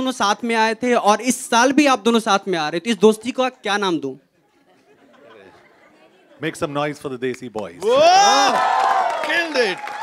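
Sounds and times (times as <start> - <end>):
murmur of many voices: 4.2 - 7.0.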